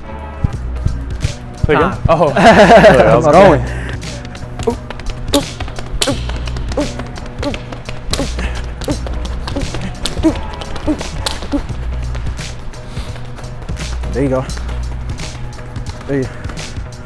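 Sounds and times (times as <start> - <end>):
background music with bass: 0.0 - 17.0
sneakers tapping on gym floor: 3.8 - 17.0.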